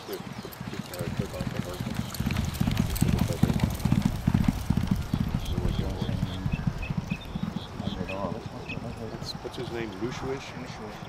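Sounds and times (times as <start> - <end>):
horse hooves galloping on dirt: 0.0 - 11.0.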